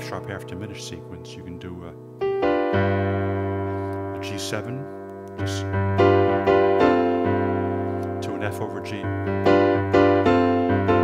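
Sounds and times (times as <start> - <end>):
piano chord: 0.0 - 11.0.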